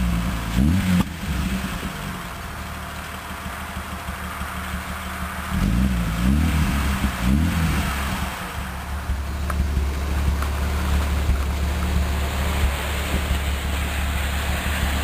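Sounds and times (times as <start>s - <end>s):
car engine idling and revving: 0.0s - 15.0s.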